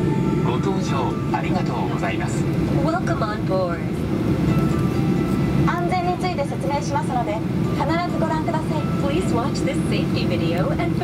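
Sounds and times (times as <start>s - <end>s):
airplane cabin rumble: 0.0s - 11.0s
woman narrating: 2.7s - 4.0s, 5.7s - 11.0s.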